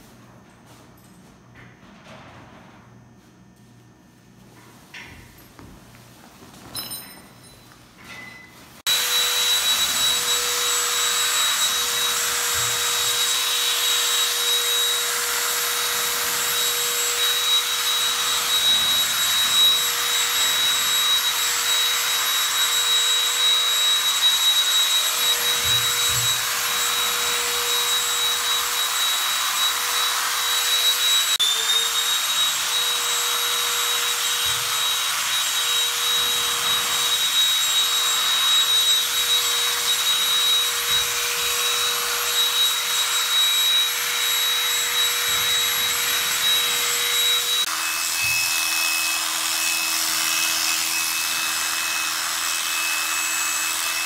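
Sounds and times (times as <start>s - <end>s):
electric clippers whining: 8.8s - 54.0s.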